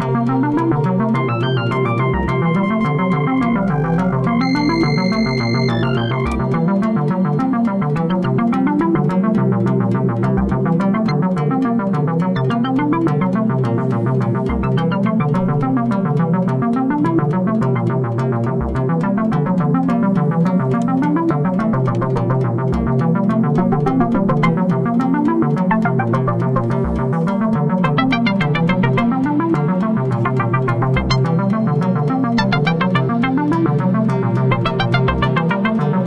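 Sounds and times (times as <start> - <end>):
rapid sequenced synth notes: 0.0 - 36.0
deep low synth note: 1.2 - 6.7.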